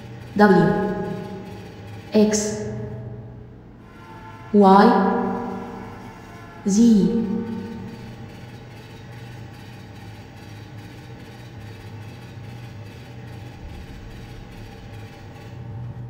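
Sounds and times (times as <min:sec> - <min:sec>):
train engine rumbling: 0:00.0 - 0:16.0.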